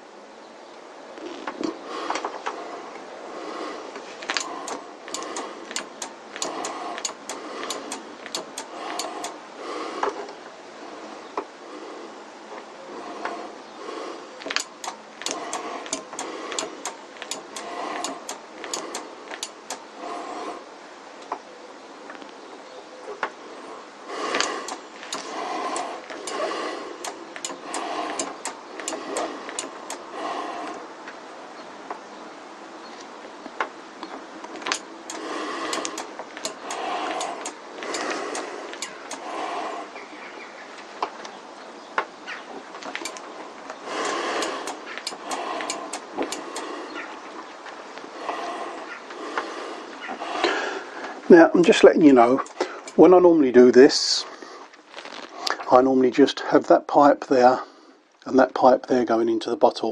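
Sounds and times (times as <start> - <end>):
sharp clicks: 4.2 - 9.4, 14.4 - 20.0, 24.2 - 30.8, 33.0 - 40.0, 42.8 - 53.1.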